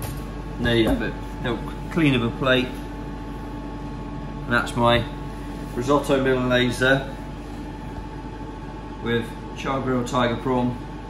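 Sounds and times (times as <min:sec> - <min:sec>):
ventilation whir: 0:00.0 - 0:11.0.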